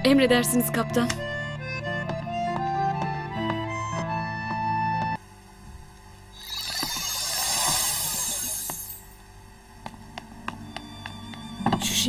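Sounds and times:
background music: 0:00.0 - 0:05.2, 0:09.9 - 0:12.0
shimmering glittery sound effect: 0:06.4 - 0:09.2.

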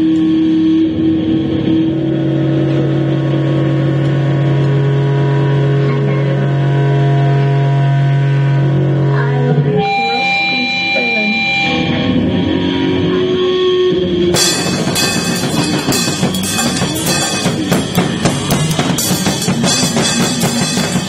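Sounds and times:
electric guitar droning note: 0:00.0 - 0:21.0
band playing: 0:14.3 - 0:21.0.

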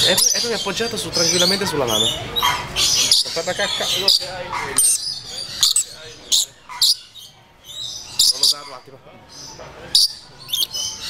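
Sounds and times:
lories calling: 0:00.0 - 0:11.0.

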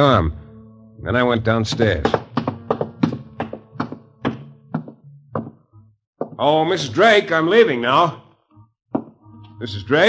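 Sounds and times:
footsteps going down stairs: 0:01.7 - 0:06.6.

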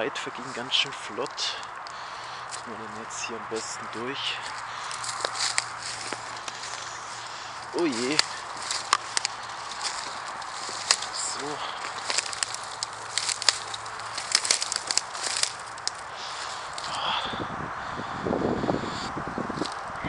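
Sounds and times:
twigs rustling and snapping: 0:00.0 - 0:17.0, 0:19.5 - 0:20.0.

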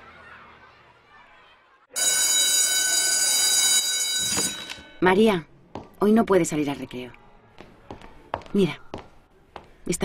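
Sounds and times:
electric school bell ringing: 0:01.9 - 0:05.0.

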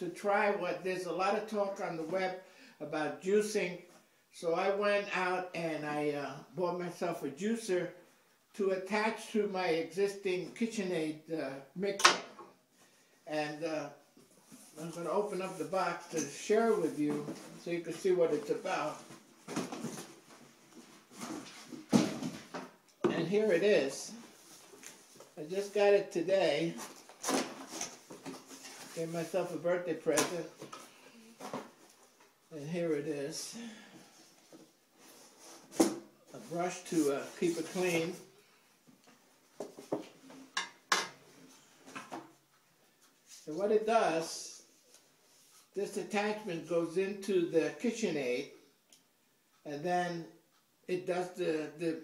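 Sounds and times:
cardboard rustling and scraping: 0:18.3 - 0:22.6, 0:26.7 - 0:29.6.

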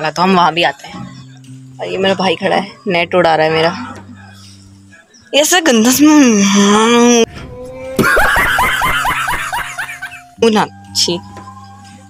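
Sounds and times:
man laughing hard: 0:08.0 - 0:10.2.

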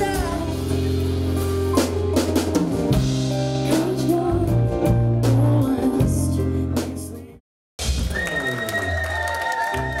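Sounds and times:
live band music: 0:00.0 - 0:10.0
audience clapping along: 0:08.0 - 0:10.0.

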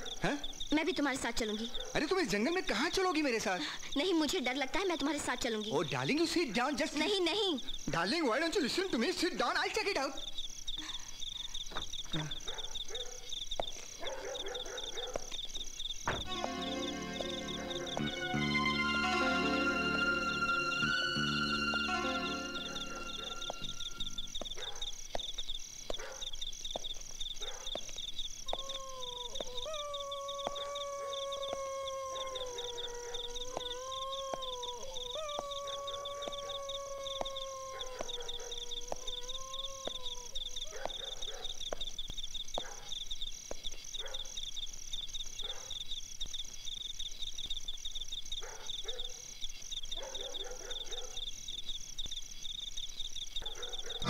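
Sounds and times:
night insects chirring: 0:00.0 - 0:54.0
canine howl: 0:28.5 - 0:41.2.

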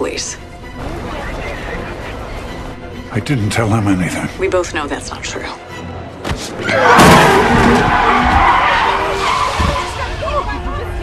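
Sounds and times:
tyres skidding: 0:06.3 - 0:11.0.

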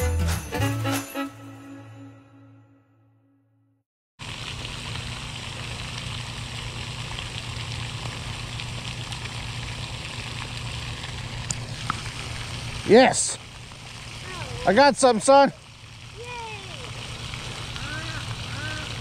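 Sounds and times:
fountain spray splashing: 0:04.2 - 0:19.0.

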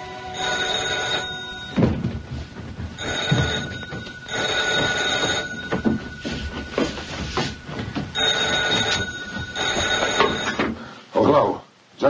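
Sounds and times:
telephone bell ringing: 0:00.0 - 0:10.7.

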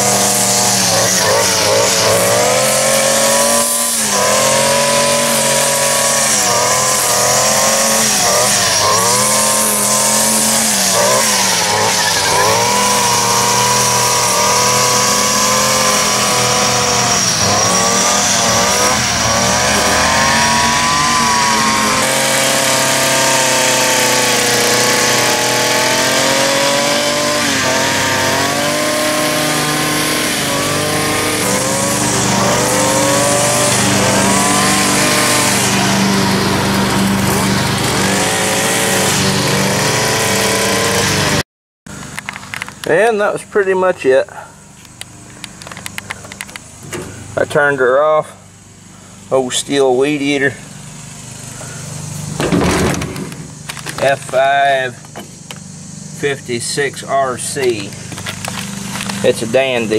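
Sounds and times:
string trimmer cutting grass: 0:00.0 - 0:43.1, 0:44.4 - 0:47.9, 0:48.6 - 0:59.9.

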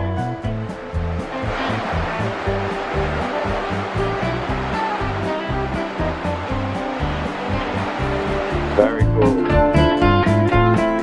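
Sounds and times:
background music with bass line: 0:00.0 - 0:11.0
waterfall rushing: 0:00.4 - 0:11.0.

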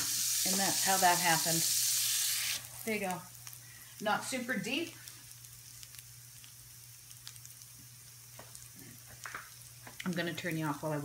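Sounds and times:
meat sizzling in a skillet: 0:00.0 - 0:11.0.

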